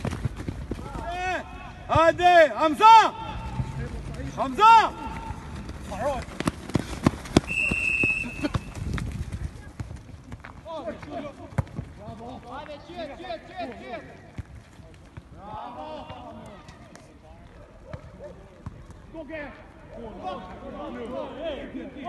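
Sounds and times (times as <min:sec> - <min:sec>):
distant players shouting: 0:00.8 - 0:06.5.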